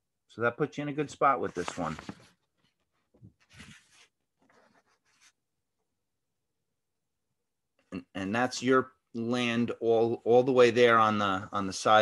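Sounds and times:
faint scratchy rustles: 1.4 - 5.4.

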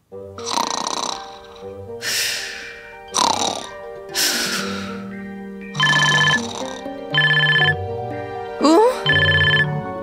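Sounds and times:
light background music: 0.0 - 10.0
trilling electronic phone ring: 5.7 - 7.8, 9.1 - 9.8.

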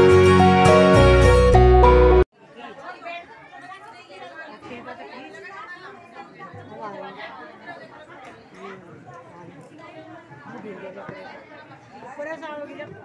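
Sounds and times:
loud music: 0.0 - 2.3
crowd chatter: 2.3 - 13.0.

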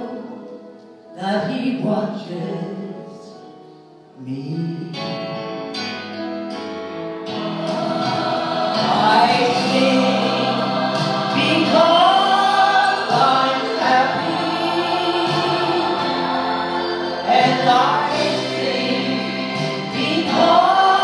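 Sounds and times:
choir voices: 7.3 - 21.0.

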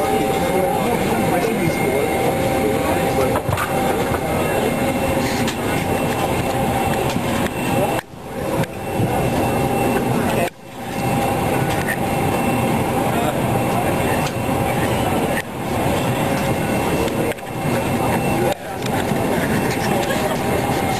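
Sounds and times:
airliner cabin drone: 0.0 - 20.9
people talking indistinctly: 0.0 - 20.9.

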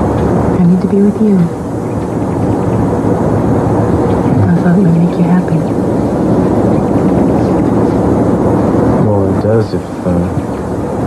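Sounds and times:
dense rushing noise: 0.0 - 11.0
murmur of a voice: 3.9 - 8.2.

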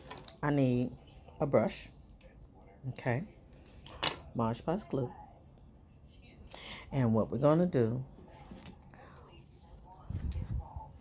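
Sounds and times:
woman speaking: 0.4 - 2.1, 2.7 - 3.5, 4.2 - 11.0.

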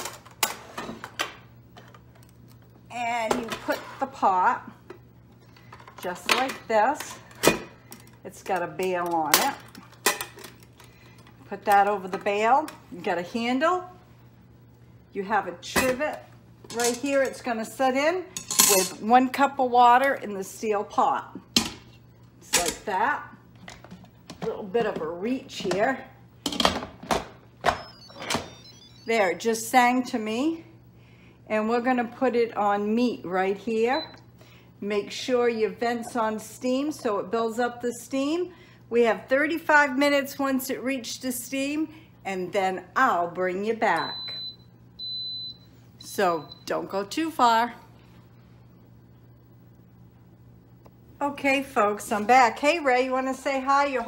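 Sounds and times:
cooker chime: 33.8 - 34.2, 43.9 - 46.9.

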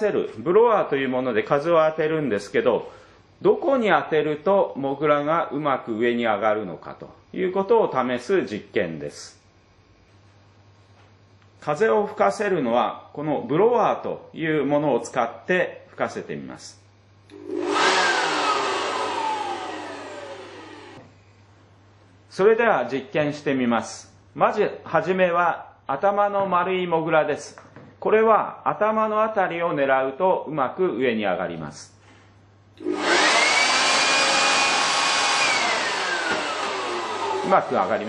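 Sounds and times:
electric blower winding down: 17.3 - 21.1, 32.8 - 38.0.

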